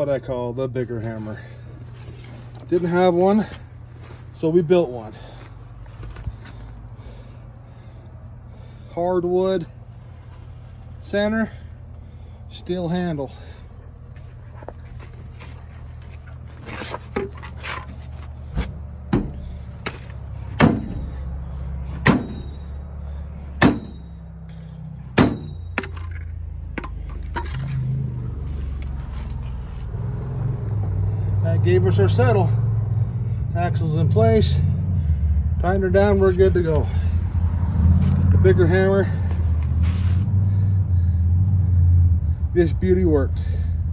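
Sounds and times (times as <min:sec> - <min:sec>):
engine idling: 0:00.0 - 0:30.0, 0:30.8 - 0:43.9
hammer striking metal: 0:22.0 - 0:22.6, 0:23.6 - 0:24.1, 0:25.2 - 0:26.1
short metallic ring: 0:22.2 - 0:22.8, 0:23.8 - 0:26.3.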